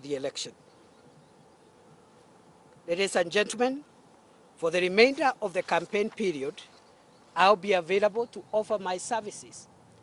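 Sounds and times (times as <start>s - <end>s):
man speaking: 2.8s - 3.9s, 4.6s - 6.7s, 7.4s - 9.7s.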